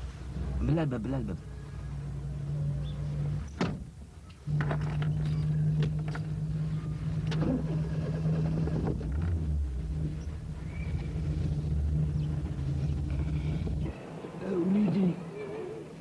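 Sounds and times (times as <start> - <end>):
car engine running: 0.2 - 16.0.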